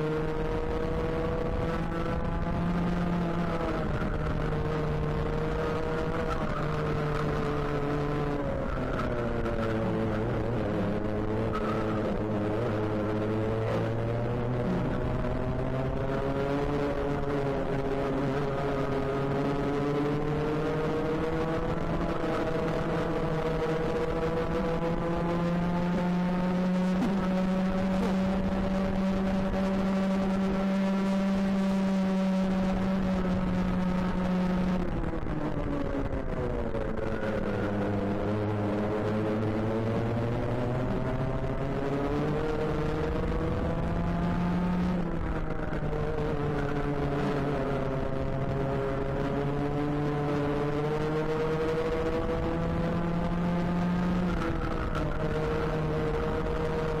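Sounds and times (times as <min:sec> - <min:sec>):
kart engine revving: 0:00.0 - 0:57.0.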